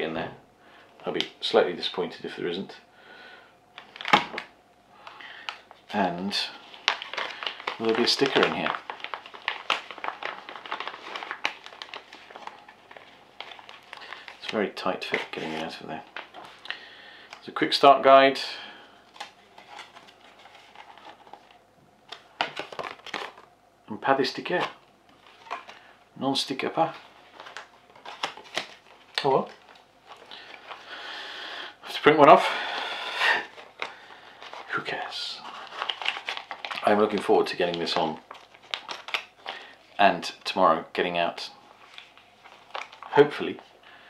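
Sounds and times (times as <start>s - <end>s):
man speaking: 0.0s - 0.4s, 1.0s - 2.8s, 5.9s - 6.6s, 7.8s - 8.8s, 14.4s - 16.1s, 17.4s - 18.7s, 23.9s - 24.8s, 26.2s - 27.0s, 29.2s - 29.6s, 31.8s - 32.6s, 34.7s - 35.5s, 36.8s - 38.2s, 40.0s - 41.6s, 43.1s - 43.6s
plastic bag crinkling: 3.8s - 17.6s, 18.5s - 23.5s, 24.2s - 40.6s, 41.6s - 44.0s.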